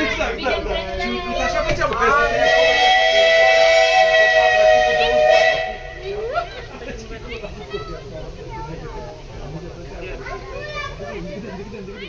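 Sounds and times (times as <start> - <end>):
steam locomotive whistle blast: 2.1 - 6.1.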